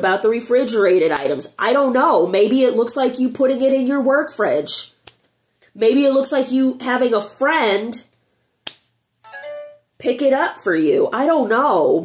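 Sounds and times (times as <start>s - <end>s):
finger snap: 5.0s - 5.3s, 8.6s - 8.9s.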